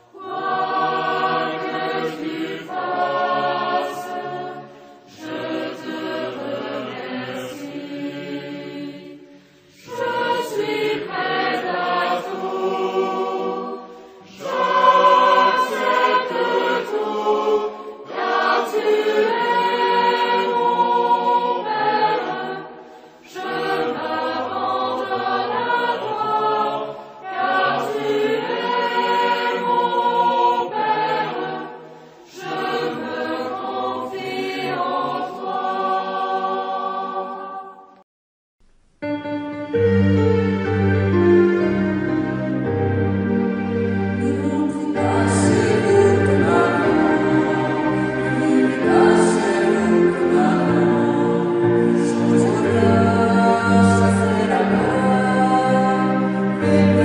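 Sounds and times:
choir singing worship song: 0.0 - 38.0, 39.8 - 57.0.

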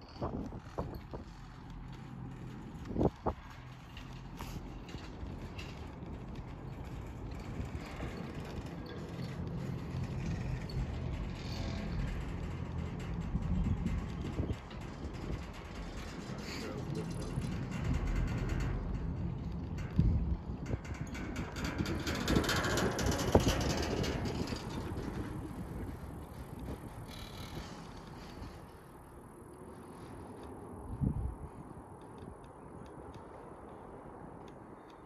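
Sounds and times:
chairlift rope rumbling over sheaves: 0.0 - 29.2.

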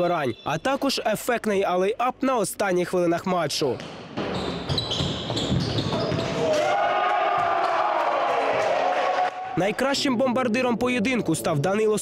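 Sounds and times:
sneakers squeaking on wooden court: 3.8 - 6.6
basketball bouncing: 3.8 - 6.7, 7.3 - 7.7.

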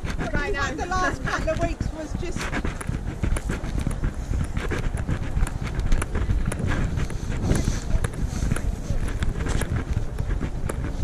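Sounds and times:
footsteps walking: 0.0 - 11.0
camera handling rumble: 1.1 - 11.0.

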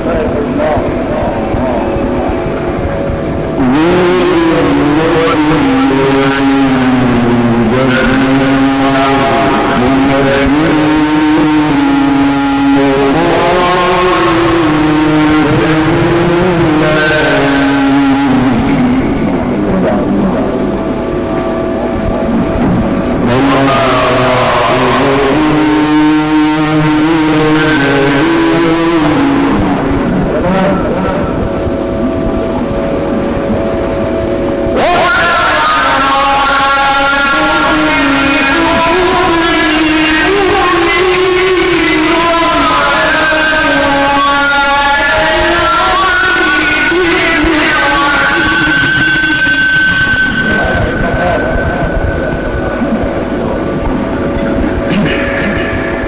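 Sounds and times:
man chanting melodically: 0.0 - 56.0
steady background noise: 0.0 - 56.0.

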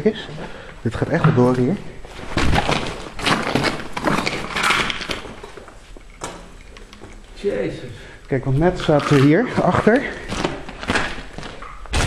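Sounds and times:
footsteps scuffing and rustling: 1.0 - 7.2.

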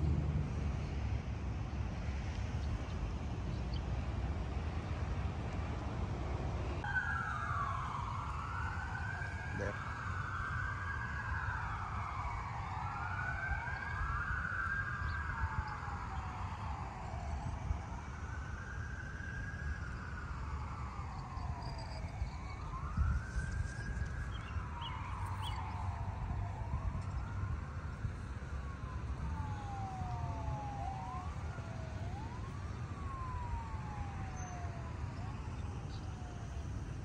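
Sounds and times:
emergency siren wailing: 0.0 - 37.0.

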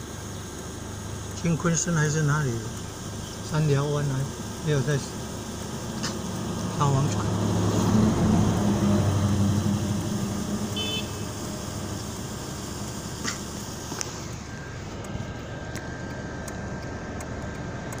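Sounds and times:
car engine hum: 0.0 - 18.0
road noise inside car: 0.0 - 18.0.

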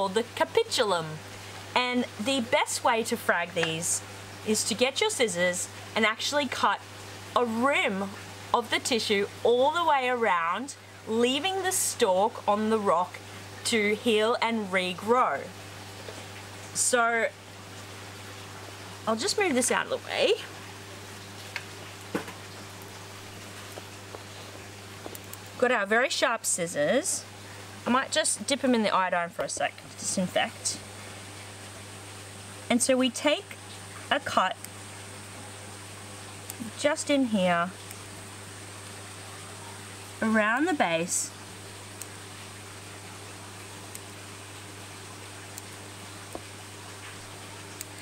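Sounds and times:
low pump hum: 0.0 - 48.0
running water hiss: 0.0 - 48.0.

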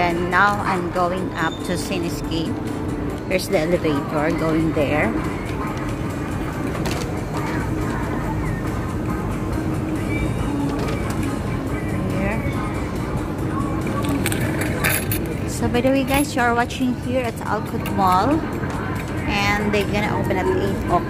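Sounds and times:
shopping mall ambience: 0.0 - 21.0
faint voices: 3.4 - 21.0.

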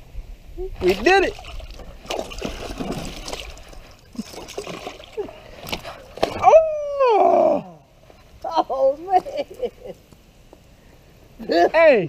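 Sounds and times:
water splashing and trickling: 0.8 - 6.5.

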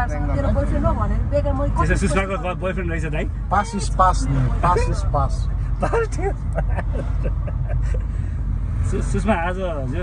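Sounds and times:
car rumble from inside cabin: 0.0 - 10.0.

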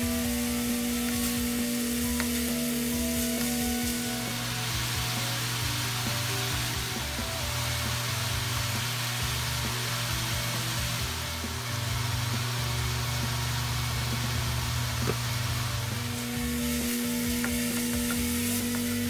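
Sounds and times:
background music: 0.0 - 19.0
vegetables sizzling in frying pan: 0.0 - 19.0.

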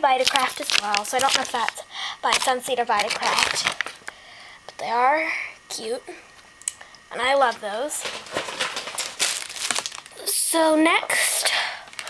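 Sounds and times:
plastic bag crinkling: 0.0 - 4.1, 8.0 - 10.3.

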